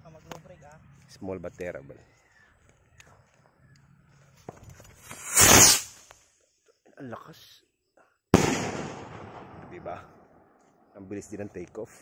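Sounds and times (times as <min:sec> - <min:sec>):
rocket launching whoosh: 0:05.0 - 0:06.0.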